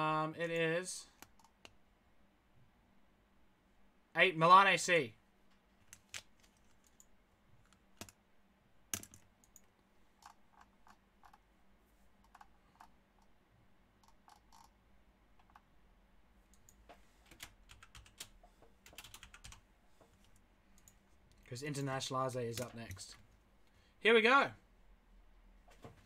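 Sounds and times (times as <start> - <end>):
computer keyboard typing clicks: 16.5 - 19.6.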